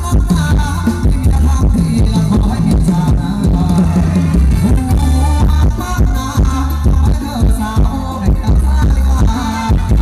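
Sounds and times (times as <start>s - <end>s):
heavy bass drum beat: 0.0s - 10.0s
live band dance music: 0.0s - 10.0s.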